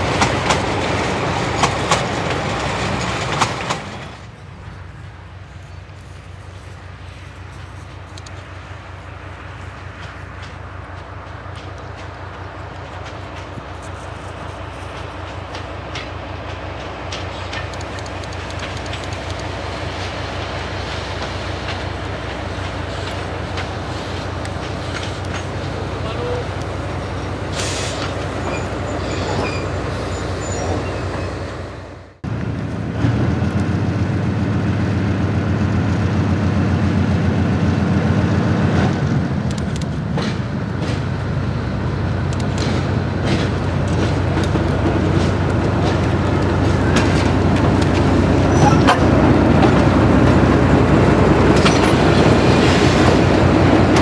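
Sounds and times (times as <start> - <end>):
wheels clattering on rails: 0.0 - 31.4, 32.2 - 54.0
diesel locomotive engine: 0.0 - 54.0.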